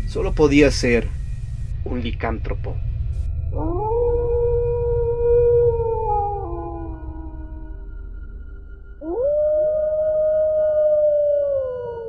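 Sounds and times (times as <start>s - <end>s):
low ambient music drone: 0.0s - 12.0s
wolf howl: 3.6s - 8.0s, 9.0s - 12.0s.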